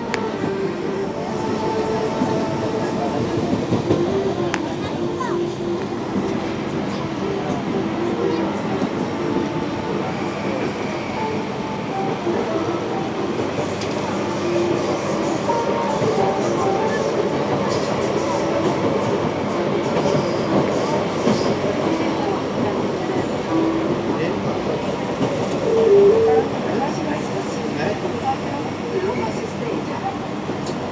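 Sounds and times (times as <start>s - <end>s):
metro train wheels rumbling: 0.0s - 30.9s.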